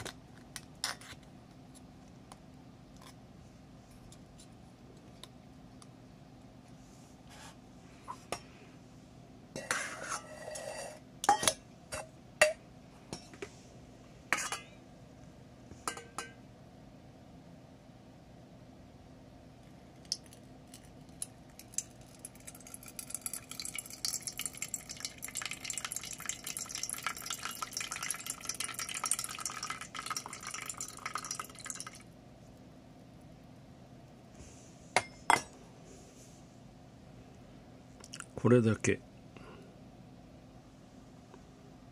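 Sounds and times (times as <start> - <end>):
water pouring into steel bowl: 21.5 - 32.0.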